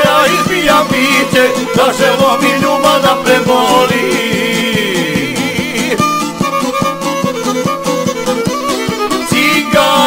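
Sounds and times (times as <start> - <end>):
steady folk beat: 0.0 - 10.0
wavering high lead line: 0.8 - 7.5.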